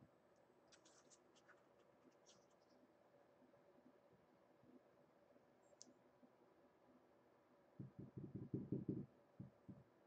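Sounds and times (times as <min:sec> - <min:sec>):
light handling ticks and scratches: 0:00.7 - 0:02.8.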